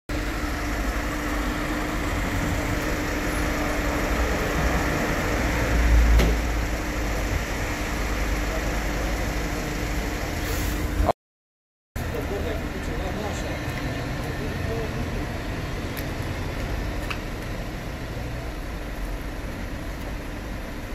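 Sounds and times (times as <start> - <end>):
cars driving past: 0.1 - 11.1.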